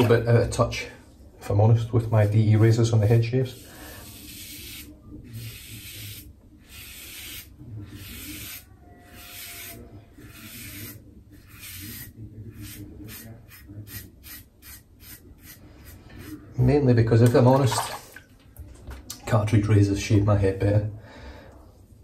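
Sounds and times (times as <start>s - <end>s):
razor scraping stubble: 4.0s - 16.4s.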